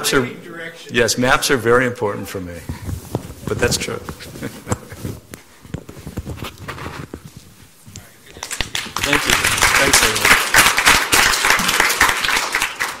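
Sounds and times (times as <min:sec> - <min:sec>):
audience applauding: 0:08.3 - 0:13.0.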